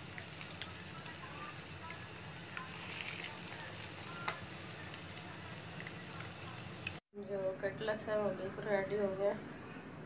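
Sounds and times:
cutlets sizzling in oil: 0.0 - 7.0.

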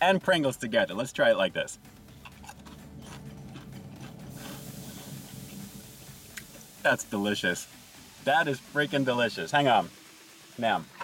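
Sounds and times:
low steady hum: 1.2 - 11.0
chewing: 2.1 - 5.7
chip crunching: 2.2 - 5.5.

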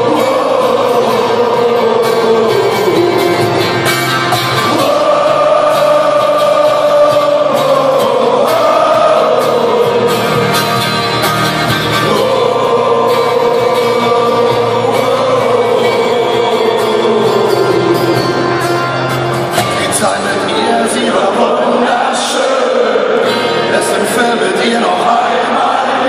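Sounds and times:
live rock band: 0.0 - 24.4
crowd singing held notes: 0.0 - 26.0.

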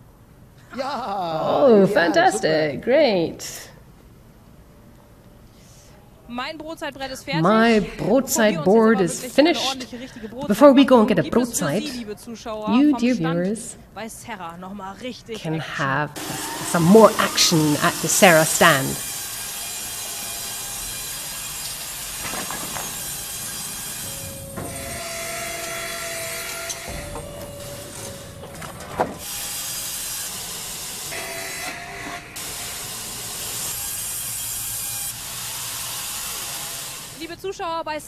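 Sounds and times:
faint whining tone: 16.2 - 32.4
band saw sawing a log: 16.2 - 37.3.

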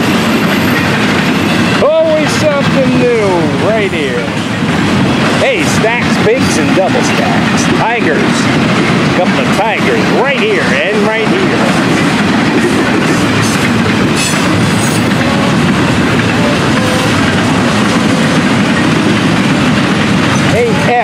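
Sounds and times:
freight train wheels rumbling on rail: 0.0 - 21.0.

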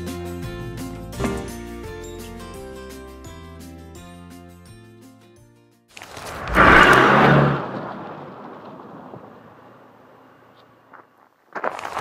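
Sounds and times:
loud rushing whoosh: 6.2 - 9.6.

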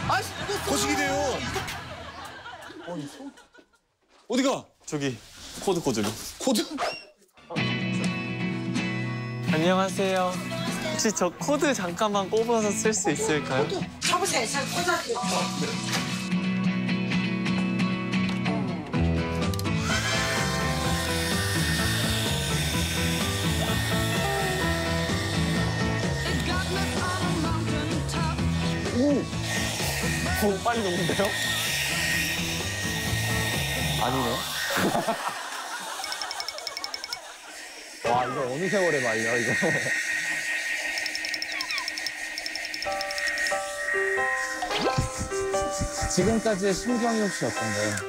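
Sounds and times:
background music: 0.0 - 2.8, 7.4 - 37.1, 41.0 - 48.0
hair dryer motor whine: 19.8 - 27.2.

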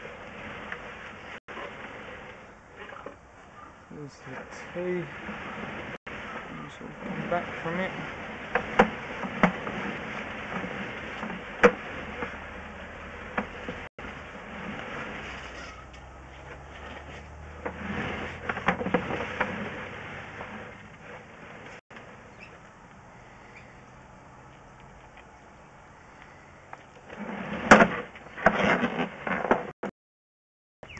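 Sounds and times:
scraping in pipe: 0.0 - 24.7, 26.0 - 29.7.

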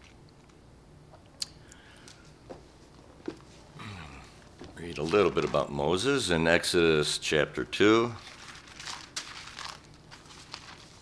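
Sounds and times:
thin pages rustling: 4.7 - 5.7, 8.2 - 11.0.

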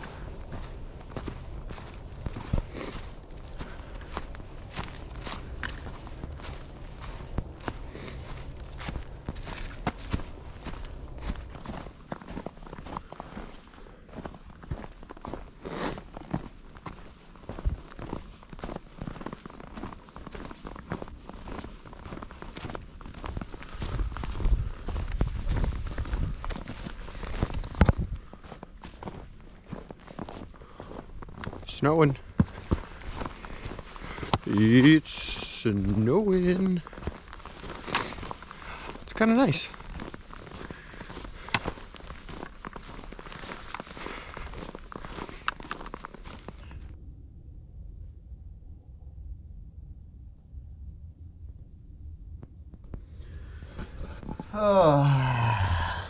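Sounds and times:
low rumble: 0.0 - 15.5, 16.2 - 39.1, 39.7 - 56.0
footsteps on leaves and snow: 0.0 - 47.0.

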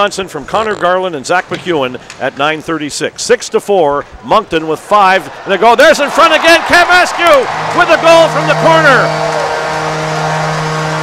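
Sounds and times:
crowd noise: 0.0 - 11.0
arena goal horn: 7.5 - 11.0.

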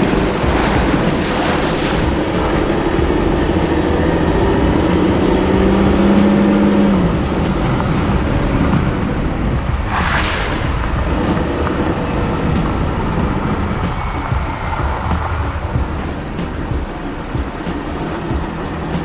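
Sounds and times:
background music: 0.0 - 19.0
vehicle rumbling on dirt trail: 0.0 - 19.0.

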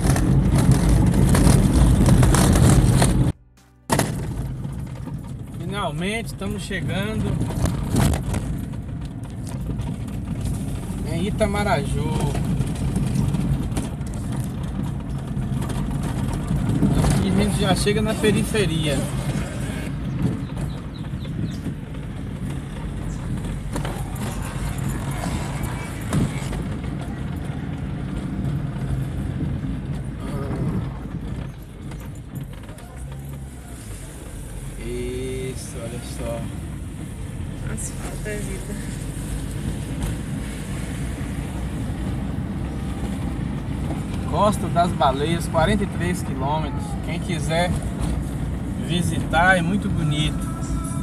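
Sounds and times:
car engine and tyre rumble: 0.0 - 51.0.

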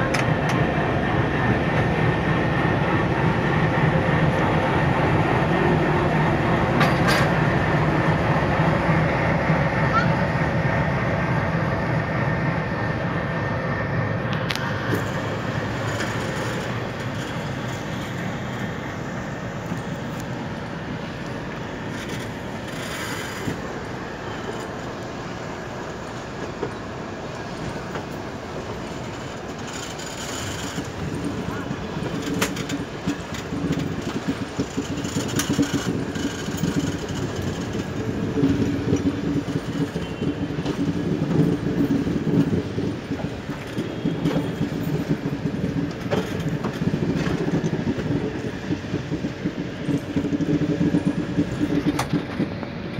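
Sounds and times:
wheels clicking over rail joints: 0.0 - 2.1, 3.1 - 7.6, 14.3 - 52.9
train running rumble: 0.0 - 52.9.

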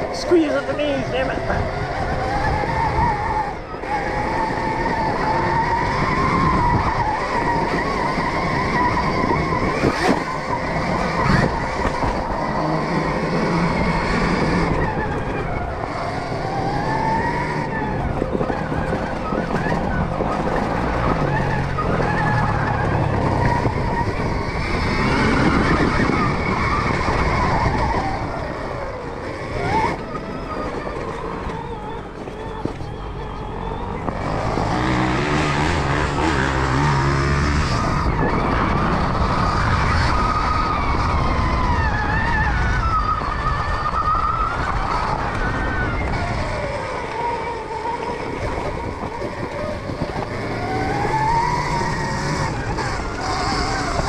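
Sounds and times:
drivetrain and suspension rattle: 0.0 - 54.0.

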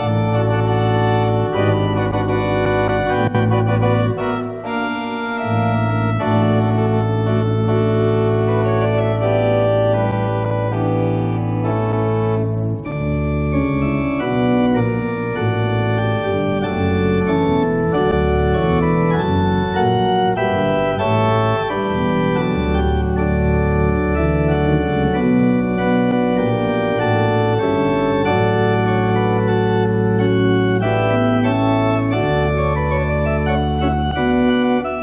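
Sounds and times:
organ playing sustained chords: 0.0 - 35.0.

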